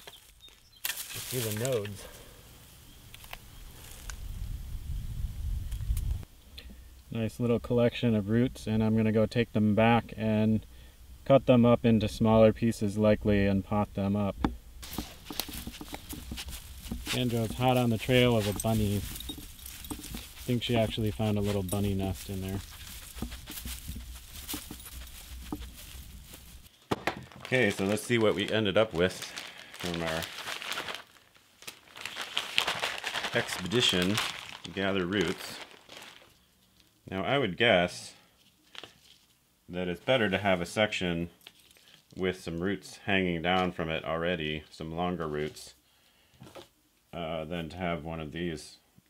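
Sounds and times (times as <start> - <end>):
hands digging in soil and leaves: 0.0 - 2.1, 14.8 - 26.7, 27.4 - 36.4
dry grass rustling: 0.0 - 4.5, 14.6 - 37.0
low steady rumble: 4.3 - 26.7.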